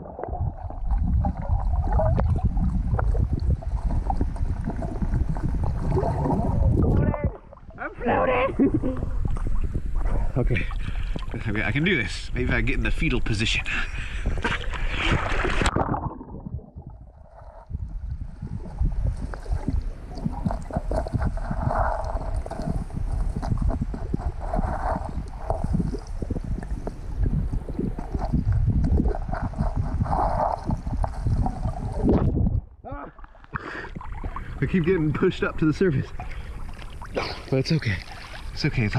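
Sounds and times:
gravel clicking underwater: 0:00.0 - 0:07.6, 0:14.1 - 0:37.1
underwater rumble of moving water: 0:00.0 - 0:38.9.

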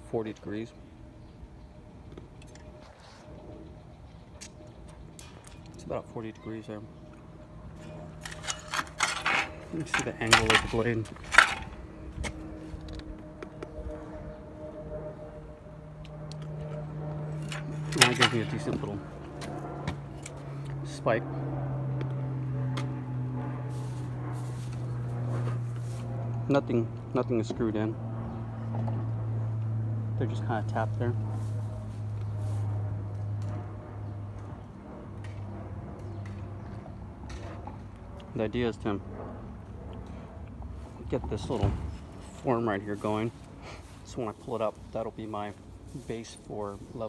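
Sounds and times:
low mechanical hum: 0:00.0 - 0:47.0.

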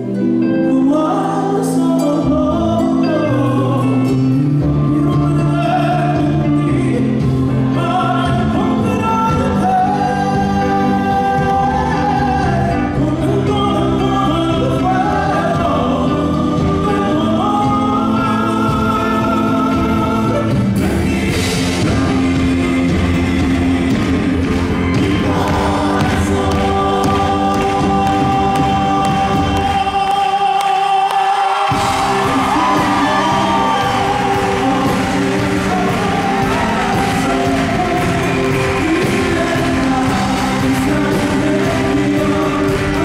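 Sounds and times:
live folk-pop band with vocals: 0:00.0 - 0:43.0.

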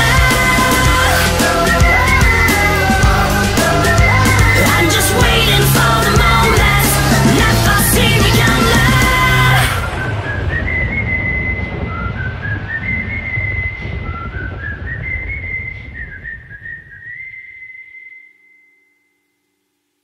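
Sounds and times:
rock band playing: 0:00.0 - 0:09.7
low rumble: 0:00.0 - 0:17.0
high whistled melody: 0:00.0 - 0:19.5.

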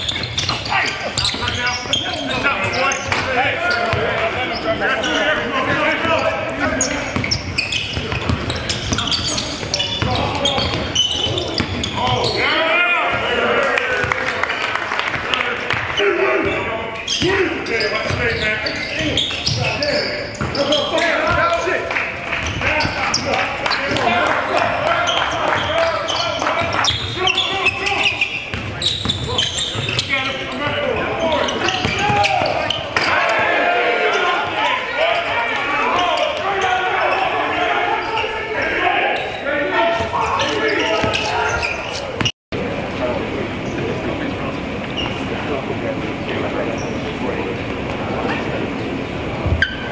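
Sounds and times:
players shouting: 0:00.0 - 0:42.3.

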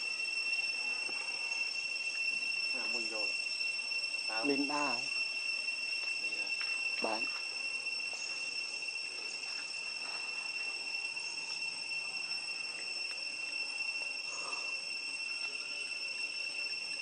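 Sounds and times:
insects droning: 0:00.0 - 0:17.0.

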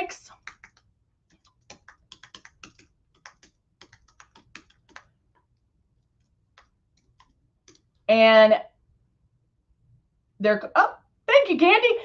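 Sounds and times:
faint keyboard typing: 0:00.3 - 0:08.1.

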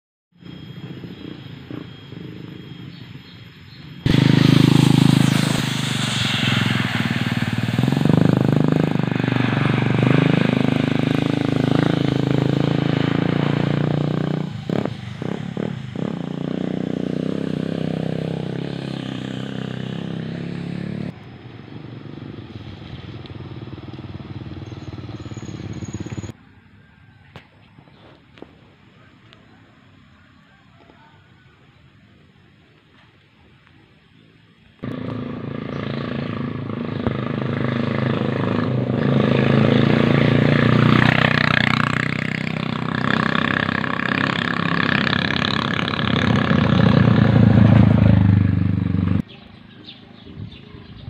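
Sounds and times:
road noise: 0:00.3 - 0:51.0
motorcycle engine revving: 0:00.4 - 0:26.4, 0:34.8 - 0:49.4.

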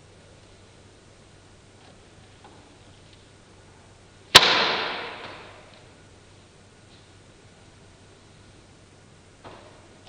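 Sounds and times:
rubber balloon snapping: 0:04.4 - 0:05.4.

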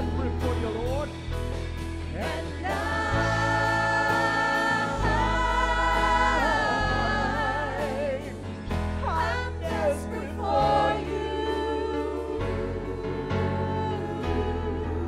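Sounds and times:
women singing a worship song: 0:00.0 - 0:01.2, 0:02.1 - 0:15.0
band with bass and drums: 0:00.0 - 0:11.0.

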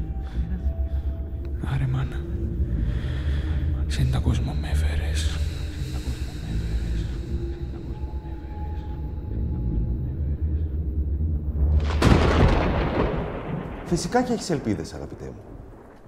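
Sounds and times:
deep rumbling drone: 0:00.0 - 0:14.2.

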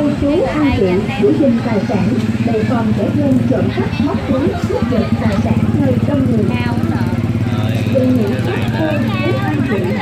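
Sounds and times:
crowd chatter: 0:00.0 - 0:10.0
small engine humming: 0:00.0 - 0:10.0.

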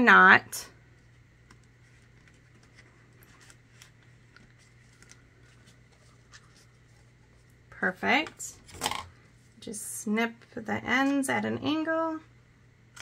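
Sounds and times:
ribbon and cardstock rustling: 0:01.0 - 0:08.7.

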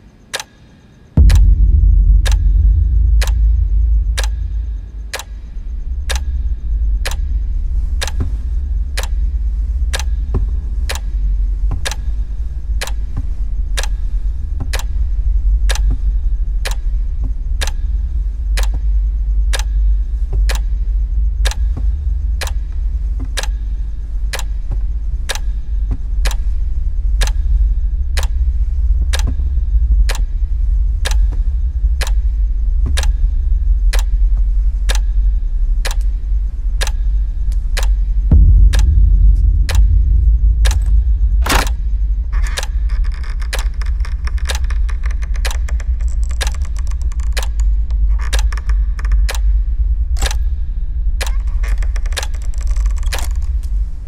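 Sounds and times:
clock ticking: 0:00.3 - 0:50.6, 0:51.2 - 0:53.7
sharp hit: 0:01.2 - 0:08.4, 0:38.3 - 0:42.9
low boom: 0:01.2 - 0:17.7, 0:21.0 - 0:54.0
deep low drone: 0:01.2 - 0:54.0.

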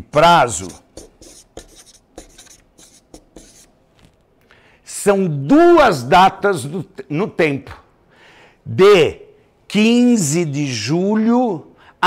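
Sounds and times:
marker pen writing on paper: 0:00.0 - 0:03.7.

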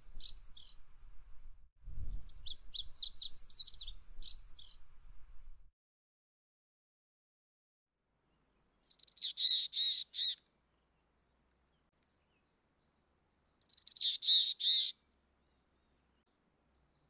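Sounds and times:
bird calling: 0:08.8 - 0:10.4, 0:13.6 - 0:15.0.

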